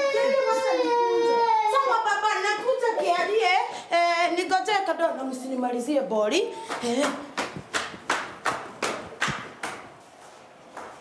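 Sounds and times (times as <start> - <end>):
hand claps: 6.6 - 10.0.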